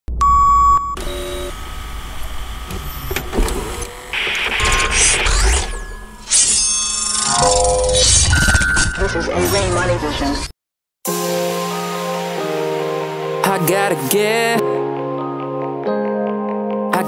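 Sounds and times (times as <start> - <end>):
mechanical whirring: 1.0 - 8.7
test-tone beep: 4.6 - 9.6.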